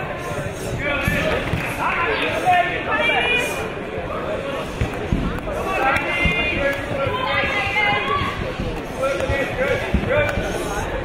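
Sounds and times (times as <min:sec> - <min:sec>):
voices shouting: 0:05.5 - 0:09.8.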